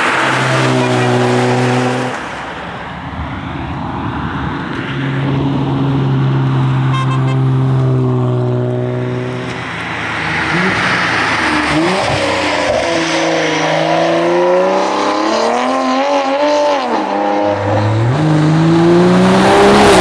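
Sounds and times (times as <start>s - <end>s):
car engine revving through gears: 0.0s - 2.2s, 7.5s - 20.0s.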